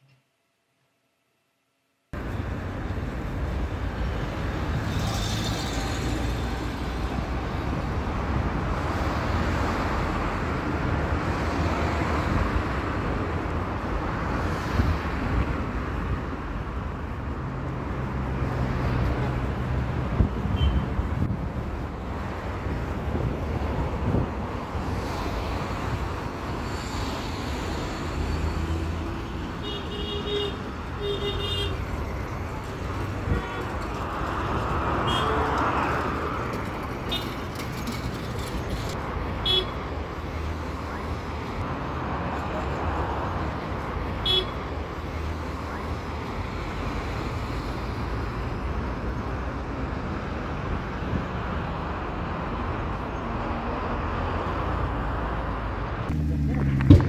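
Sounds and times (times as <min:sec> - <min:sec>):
cars passing: 0:02.1 - 0:57.0.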